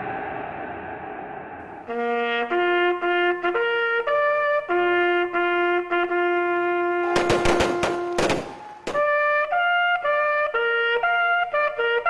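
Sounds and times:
trumpet holding low note: 1.9 - 12.0
rifle volley shots: 7.0 - 9.4.

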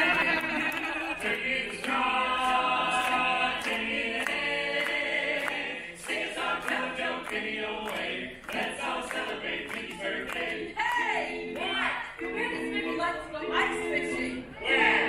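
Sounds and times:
vocal group singing a cappella: 0.0 - 15.0.

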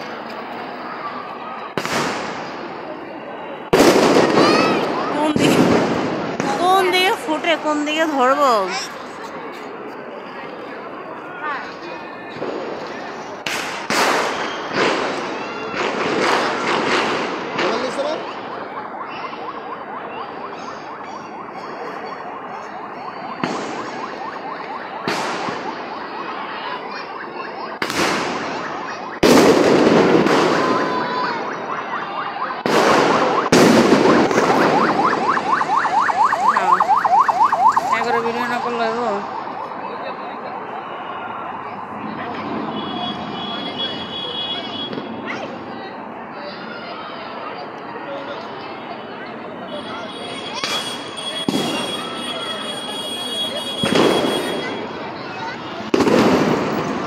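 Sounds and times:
fireworks bangs and crackle: 0.0 - 8.0, 11.6 - 19.0, 20.4 - 26.4, 27.7 - 39.7, 49.8 - 57.0
crowd of voices: 0.0 - 57.0
warbling electronic alarm: 30.9 - 40.8.

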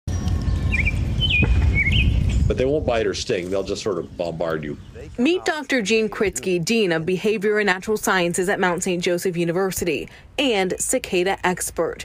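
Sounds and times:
bird chirps: 0.1 - 2.5.

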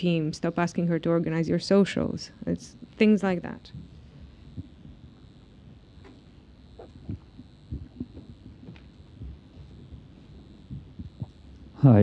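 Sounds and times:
microphone handling thumps: 3.7 - 11.6.

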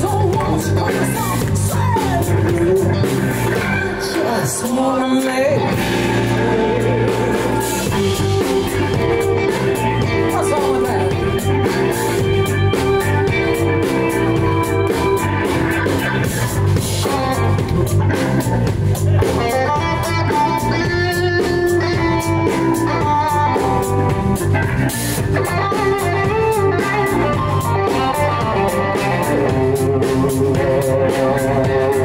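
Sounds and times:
bass guitar: 0.0 - 32.0
drum kit: 0.0 - 32.0
electric guitar solo: 0.0 - 32.0.

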